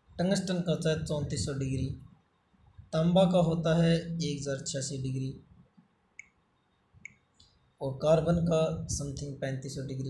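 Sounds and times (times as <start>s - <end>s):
man's voice: 0.2s - 2.0s, 3.0s - 5.4s, 7.8s - 10.0s.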